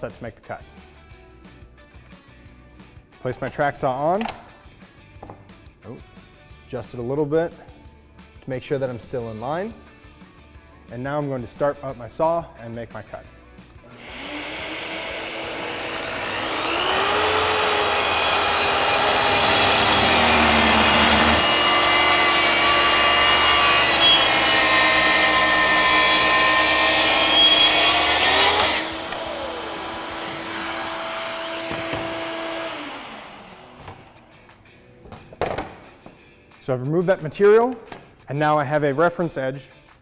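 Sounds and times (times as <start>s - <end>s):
track saw cutting board: 13.9s - 34.4s.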